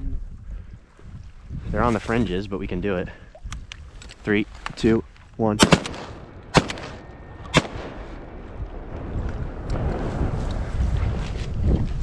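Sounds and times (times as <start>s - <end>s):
wind rumbling on microphone: 0.0s - 12.0s
loud shotgun shot: 5.6s - 8.2s.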